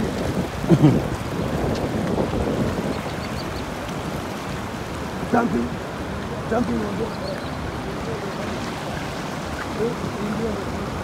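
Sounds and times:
river rushing over rocks: 0.0s - 11.0s
faint voices: 5.2s - 11.0s.

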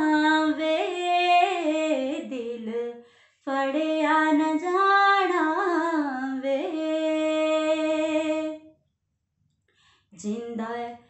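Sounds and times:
woman singing unaccompanied: 0.0s - 8.6s, 10.2s - 11.0s.

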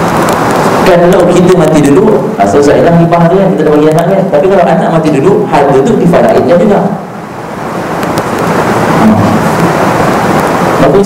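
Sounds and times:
loud rushing noise: 7.0s - 11.0s.

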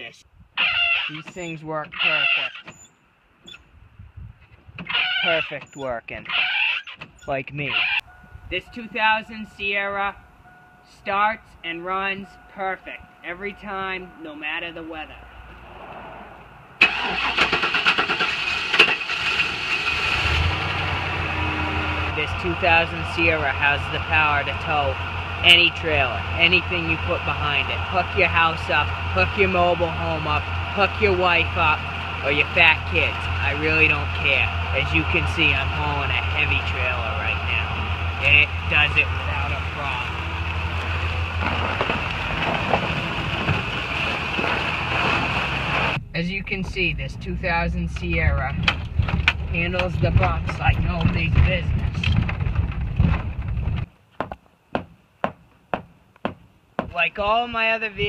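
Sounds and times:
starter motor cranking: 16.8s - 20.9s
engine idling: 16.8s - 44.9s
truck running at low speed: 18.1s - 53.9s.

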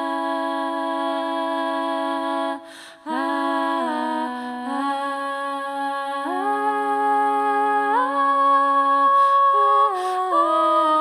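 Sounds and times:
a cappella voices humming chord: 0.0s - 11.0s.

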